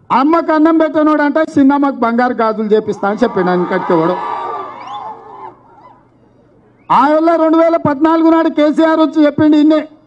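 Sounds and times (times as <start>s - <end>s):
faint background noise: 0.0s - 10.0s
man speaking over loudspeaker: 0.1s - 4.3s, 6.9s - 10.0s.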